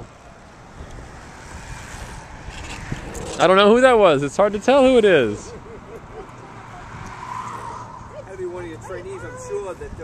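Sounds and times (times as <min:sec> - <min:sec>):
wind rushing over microphone: 0:00.0 - 0:05.6, 0:06.6 - 0:10.0.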